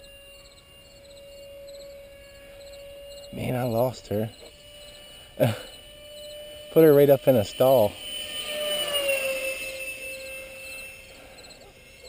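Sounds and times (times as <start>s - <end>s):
model jet whining in flight: 0.0s - 12.0s.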